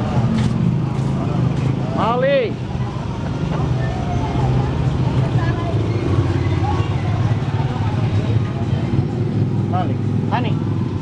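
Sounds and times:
faint background chatter: 0:00.0 - 0:11.0
vehicle engine idling: 0:00.0 - 0:11.0.

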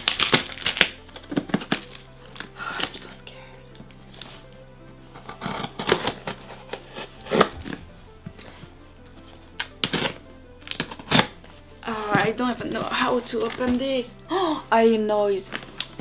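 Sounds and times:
packing tape scratching: 0:00.0 - 0:03.2, 0:05.1 - 0:08.5, 0:09.3 - 0:13.8, 0:15.5 - 0:16.0
soft background music: 0:00.0 - 0:16.0.

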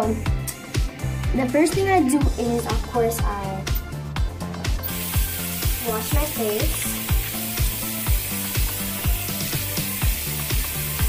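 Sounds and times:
background music with steady beat: 0:00.0 - 0:11.0
tap water running into basin: 0:04.8 - 0:11.0.

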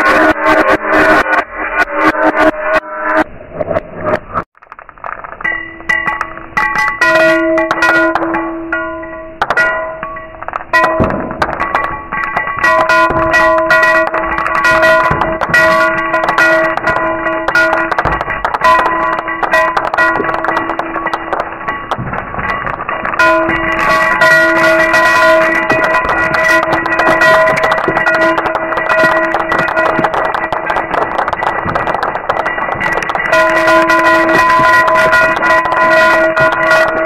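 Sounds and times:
glass ringing: 0:05.4 - 0:37.0.

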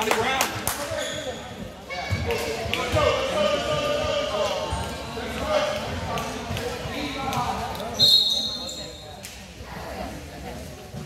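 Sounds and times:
spectator chatter: 0:00.0 - 0:11.0.

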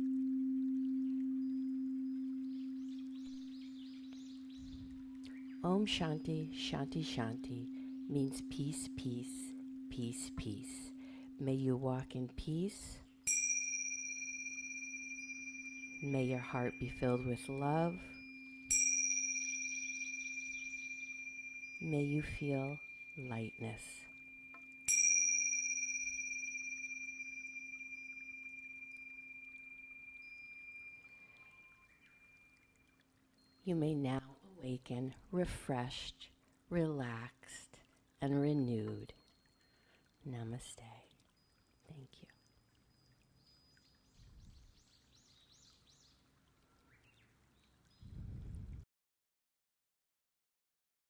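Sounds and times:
tingsha cymbals ringing: 0:00.0 - 0:11.7, 0:12.8 - 0:32.7
low steady tone: 0:00.0 - 0:35.9.

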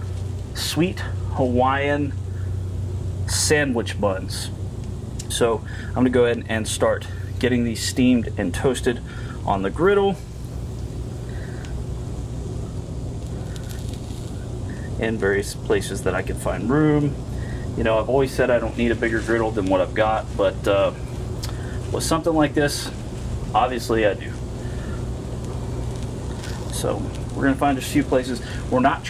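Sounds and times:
gas griddle burners roaring: 0:00.0 - 0:29.0
low hum: 0:00.0 - 0:29.0
food sizzling on a griddle: 0:13.1 - 0:14.8.

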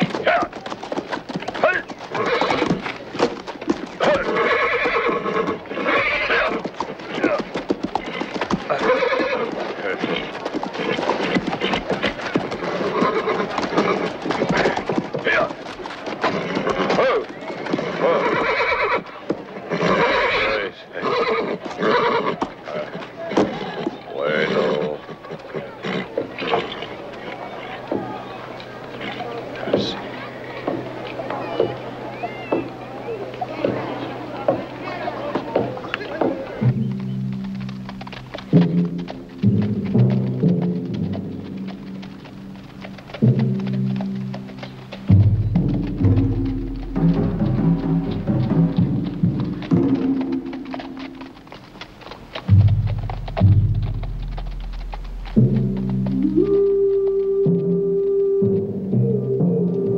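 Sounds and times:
hooves stamping: 0:00.0 - 0:59.9
horse whinnying: 0:01.6 - 0:02.8, 0:04.0 - 0:15.5, 0:16.2 - 0:19.1, 0:19.7 - 0:26.9.

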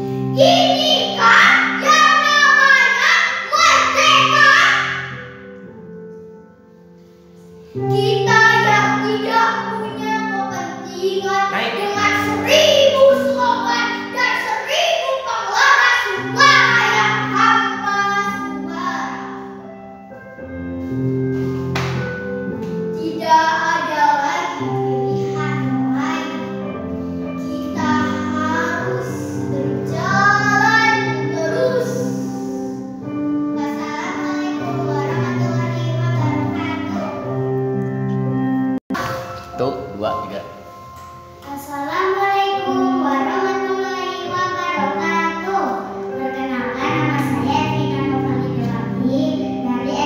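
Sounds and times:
girl singing: 0:00.0 - 0:05.2, 0:07.7 - 0:20.2, 0:22.9 - 0:37.4, 0:41.4 - 0:50.0
backing music of held notes: 0:00.0 - 0:50.0.

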